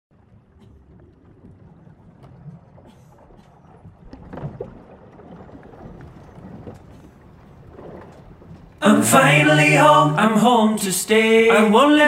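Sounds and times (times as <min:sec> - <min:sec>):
low rumble of wind and water: 0:00.1 - 0:12.0.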